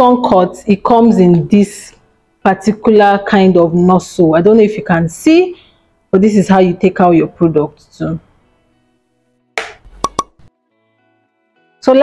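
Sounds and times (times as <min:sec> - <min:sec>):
pitched pops: 0:09.6 - 0:10.4.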